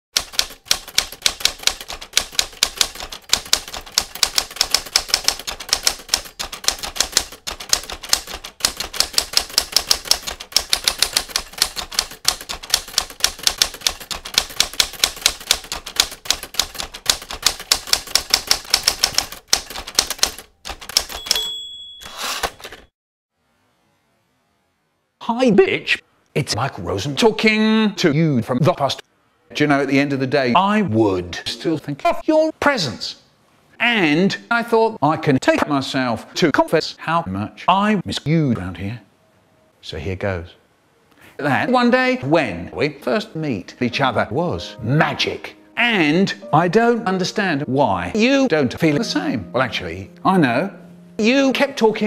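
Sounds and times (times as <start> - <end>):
typewriter carriage rasping sweep: 0.2 - 22.9
typewriter keys clacking: 0.2 - 22.9
typewriter bell ring: 20.8 - 22.9.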